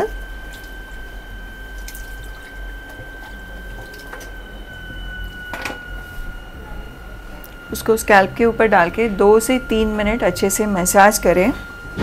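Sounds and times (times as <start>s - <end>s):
faint high whine: 0.0s - 12.0s
water dripping: 0.2s - 4.4s.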